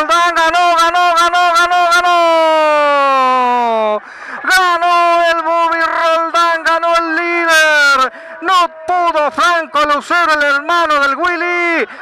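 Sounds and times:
man shouting excitedly: 0.0 - 11.9.

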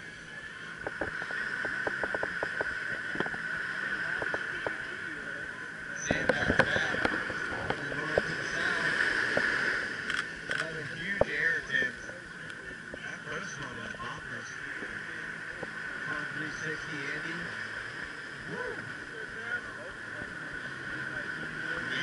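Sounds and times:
crowd voices: 0.0 - 22.0
surf washing ashore: 0.0 - 22.0.

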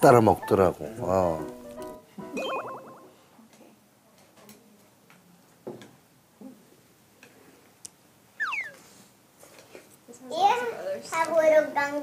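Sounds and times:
downward sliding whistle tone: 8.4 - 8.8.

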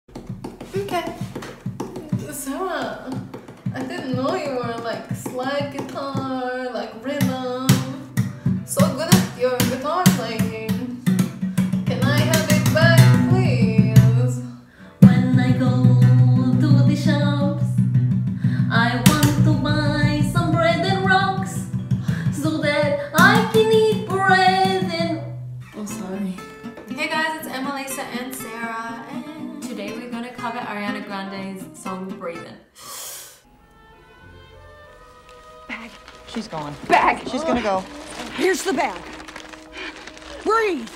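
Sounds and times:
woman singing: 3.8 - 8.1, 8.7 - 11.0, 11.9 - 17.8, 18.6 - 32.2
acoustic guitar strumming: 15.0 - 32.5, 33.5 - 39.7.

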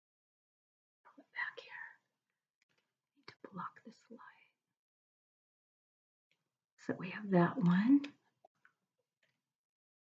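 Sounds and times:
woman whispering: 1.1 - 2.1, 3.3 - 4.6, 6.9 - 8.1.

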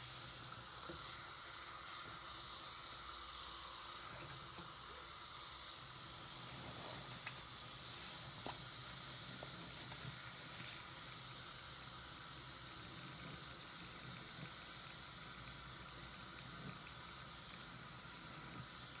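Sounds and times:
soap foam fizzing: 0.0 - 19.0.

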